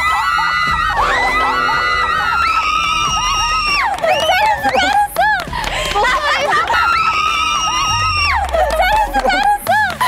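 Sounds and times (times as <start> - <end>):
young women screaming in excitement: 0.0 - 4.8, 6.6 - 8.6.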